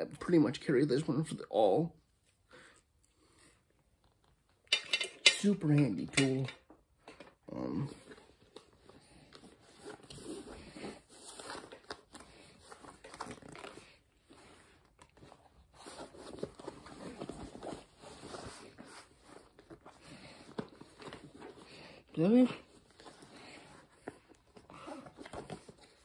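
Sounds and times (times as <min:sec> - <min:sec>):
bag contents rummaged through: 0:07.9 - 0:26.0.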